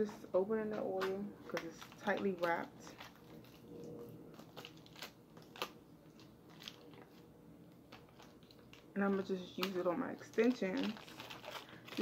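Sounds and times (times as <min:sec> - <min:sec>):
plastic wrap crinkling: 0:00.0 - 0:12.0.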